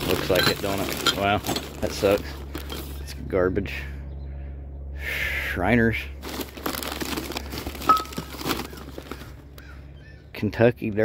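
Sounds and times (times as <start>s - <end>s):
newspaper crinkling and rustling: 0.0s - 3.0s, 6.2s - 9.7s.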